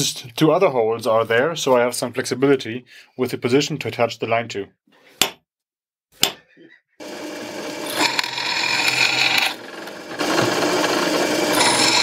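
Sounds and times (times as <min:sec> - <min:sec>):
drill press drilling steel: 0:07.0 - 0:12.0.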